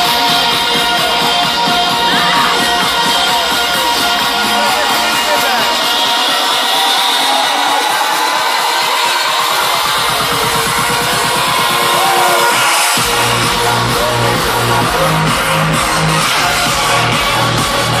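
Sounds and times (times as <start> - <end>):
heavy pulsing bassline: 0.0 - 18.0
house music over loudspeakers: 0.0 - 18.0.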